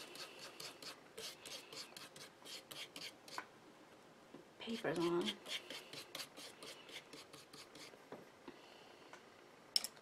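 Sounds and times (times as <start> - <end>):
brush scratching on paper: 0.0 - 3.2, 4.7 - 7.9.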